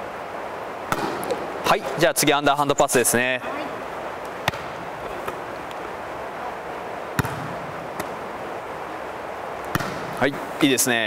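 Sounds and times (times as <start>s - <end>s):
volleyball being struck: 0.9s - 1.4s, 4.4s - 5.4s, 7.1s - 8.2s, 9.6s - 10.2s.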